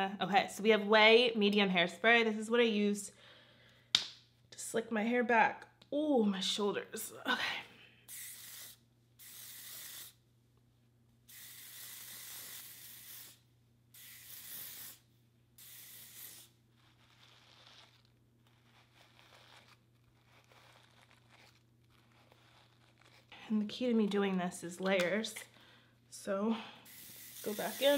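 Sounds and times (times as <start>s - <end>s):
hairspray hissing: 8.1s - 10.2s, 11.3s - 15.0s, 15.6s - 16.5s, 26.8s - 27.9s.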